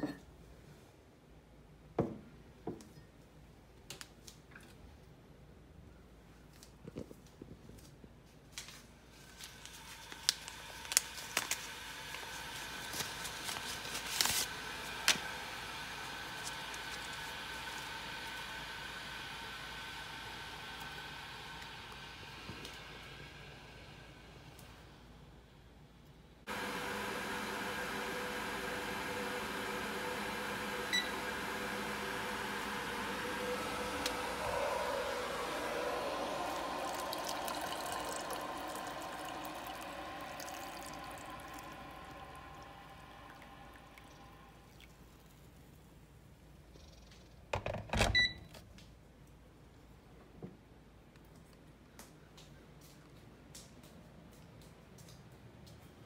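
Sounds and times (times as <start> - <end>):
kitchen appliance humming: 9.7 - 25.1, 26.4 - 44.9.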